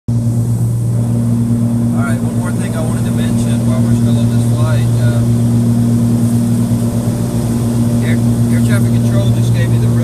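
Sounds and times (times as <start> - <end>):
aircraft cabin engine drone: 0.1 - 10.0.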